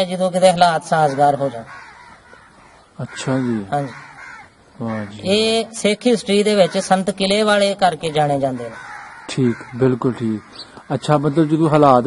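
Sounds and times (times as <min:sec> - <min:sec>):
bird calling: 0:00.0 - 0:12.0.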